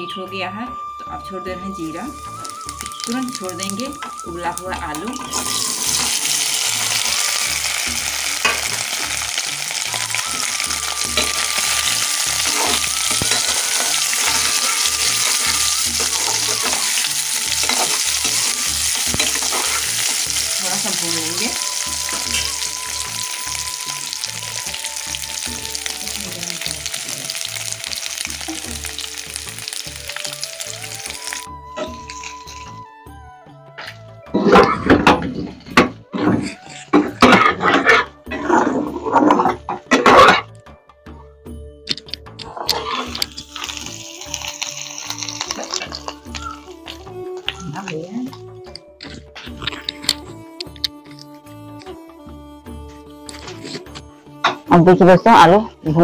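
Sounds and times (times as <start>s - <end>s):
potatoes sizzling in hot oil: 1.8s - 32.8s, 42.5s - 48.5s
metal ladle scraping a pan: 5.0s - 10.1s, 11.2s - 24.2s, 36.1s - 40.5s, 42.4s - 43.8s.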